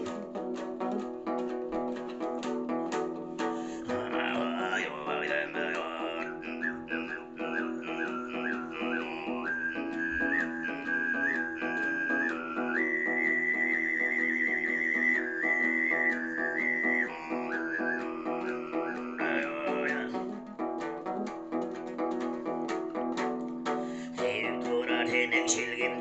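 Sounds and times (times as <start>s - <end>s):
lute strummed: 0.0s - 26.0s
whistling throat singing: 3.6s - 20.6s
low vocal drone: 3.8s - 20.2s.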